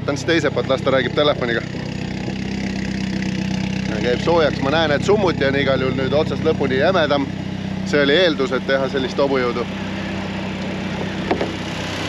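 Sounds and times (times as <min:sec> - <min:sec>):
buggy engine idling: 0:00.0 - 0:12.0.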